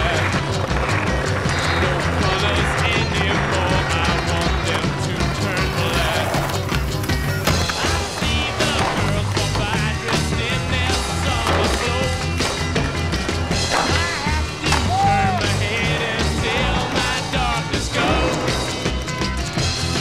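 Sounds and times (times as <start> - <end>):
music with steady beat: 0.0 - 20.0
skateboard wheels rolling on pavement: 0.0 - 20.0
skateboard pops and landings: 13.7 - 14.9.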